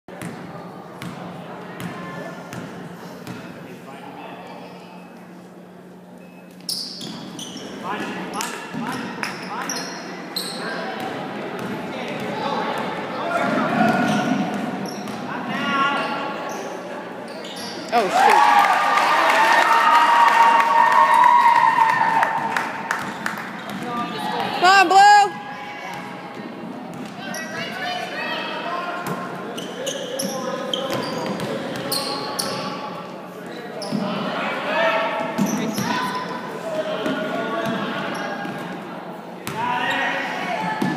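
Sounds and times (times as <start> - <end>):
sneakers squeaking: 6.2 - 18.1, 22.9 - 24.5, 26.9 - 27.9, 29.0 - 32.9, 33.8 - 34.2, 35.2 - 36.3, 37.0 - 38.8
person shouting: 24.6 - 25.3.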